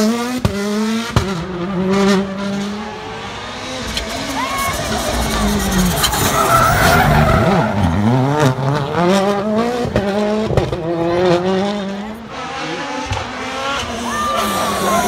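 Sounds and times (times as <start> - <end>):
rally car engine accelerating: 0.0 - 15.0.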